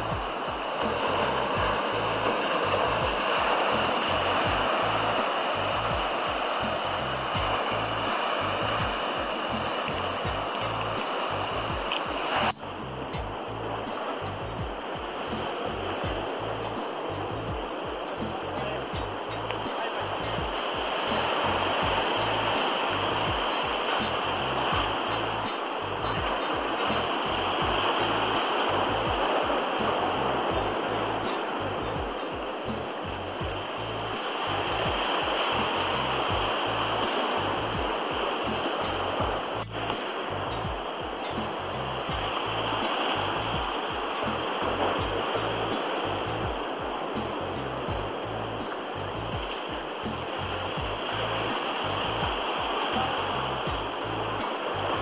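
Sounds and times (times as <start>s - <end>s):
ocean surf washing against rocks: 0.0s - 55.0s.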